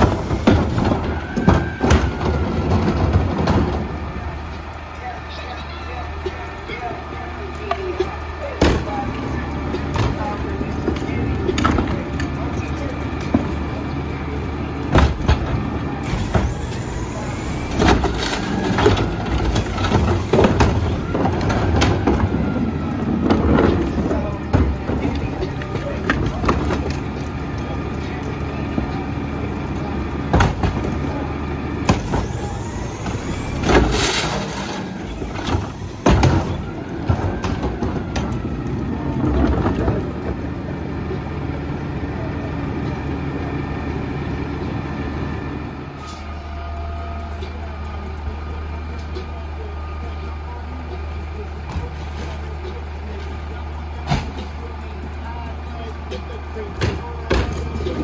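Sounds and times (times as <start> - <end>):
hiss: 0.0 - 1.0, 16.0 - 18.1, 19.5 - 21.0, 31.9 - 36.6
garbage truck engine idling: 0.0 - 39.3.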